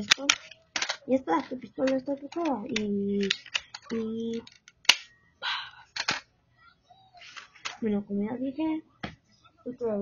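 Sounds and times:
plastic pistol handling rustle: 0.0 - 5.1.

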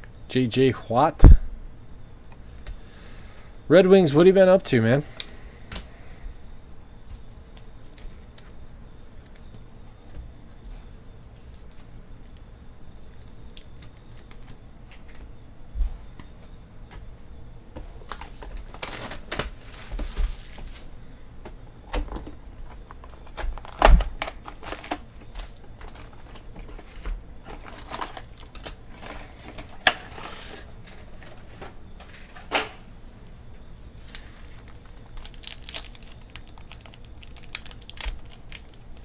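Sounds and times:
foil packs rustling: 17.8 - 21.0, 22.6 - 31.6, 33.9 - 39.0.

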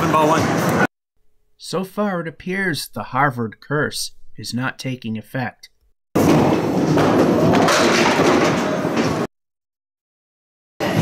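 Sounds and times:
bowling ball rolling on wooden lane: 6.2 - 9.3.

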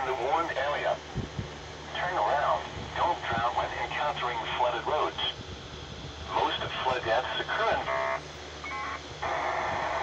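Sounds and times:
broadcast voice over radio speaker: 0.0 - 1.0, 1.9 - 5.4, 6.3 - 8.0.

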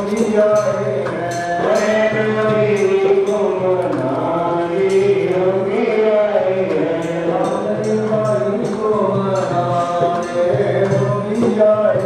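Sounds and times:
jingling percussion strikes: 0.0 - 12.0
voices chanting together: 0.0 - 12.0.

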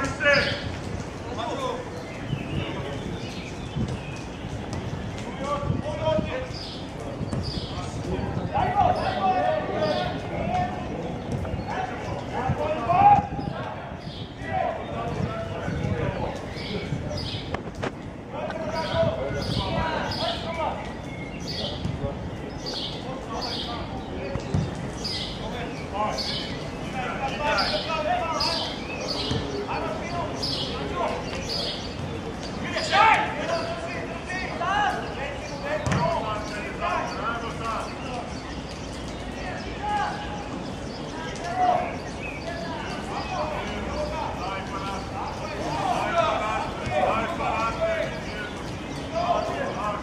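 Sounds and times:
players shouting: 0.0 - 1.9, 7.8 - 16.2, 18.3 - 20.9, 25.0 - 31.8, 32.6 - 38.3, 39.4 - 50.0
ball being kicked: 24.5 - 24.7, 35.8 - 36.2
football kick thud: 35.8 - 36.0.

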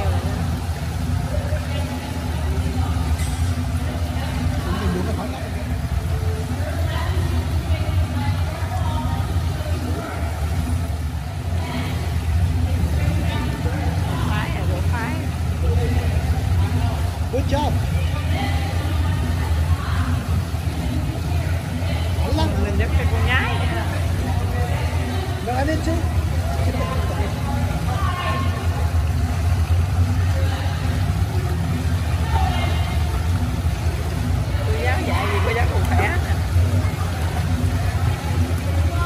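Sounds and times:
low rumble of ventilation machinery: 0.0 - 39.0.

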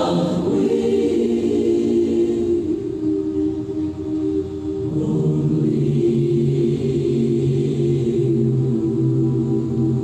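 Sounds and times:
women singing close harmony: 0.0 - 10.0.

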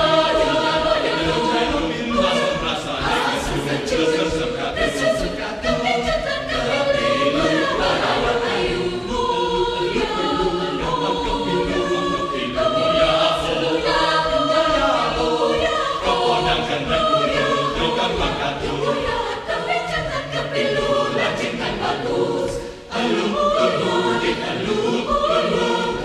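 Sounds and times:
choir singing a cappella: 0.0 - 26.0.

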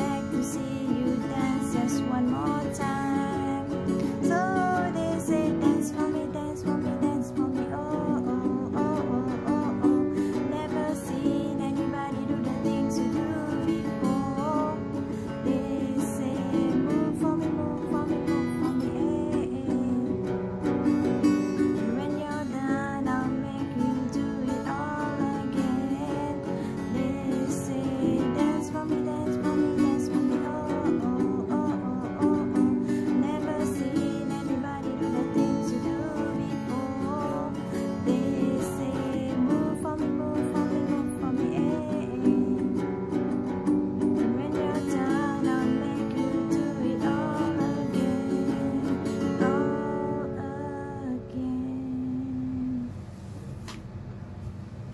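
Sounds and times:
acoustic guitar strumming: 0.0 - 52.9.

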